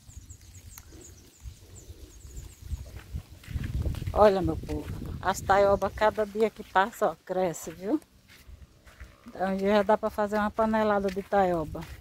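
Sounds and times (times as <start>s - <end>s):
footsteps on sandy soil: 0.0s - 12.0s.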